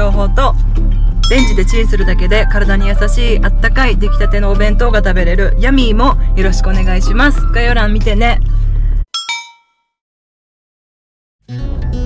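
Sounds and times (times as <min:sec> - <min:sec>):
bright bell-like chime dings: 0:01.2 - 0:01.8, 0:09.2 - 0:09.9.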